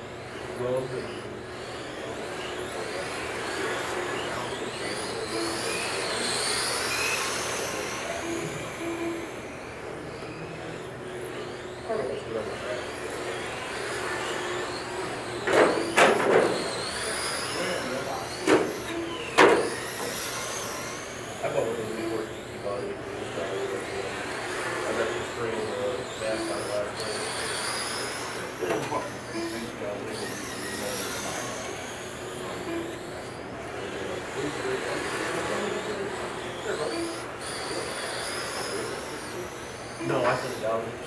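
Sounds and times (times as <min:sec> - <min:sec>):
rc car motors whining: 0:00.0 - 0:41.0.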